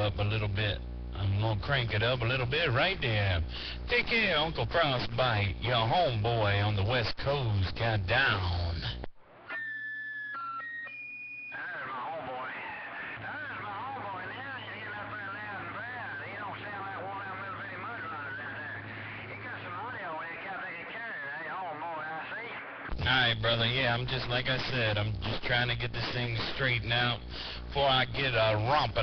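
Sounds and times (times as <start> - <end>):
voice over radio speaker: 0.0 - 9.1, 11.6 - 29.0
steady low hum: 0.0 - 9.4, 12.0 - 29.0.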